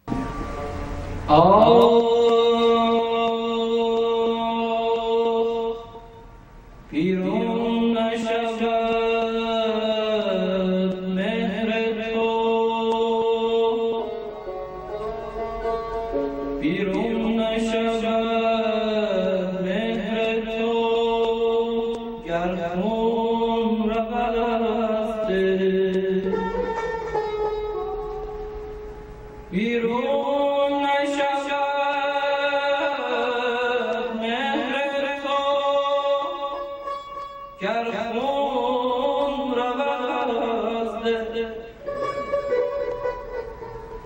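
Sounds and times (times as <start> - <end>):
man singing unaccompanied: 1.2 - 6.3, 6.9 - 27.3, 29.4 - 43.4.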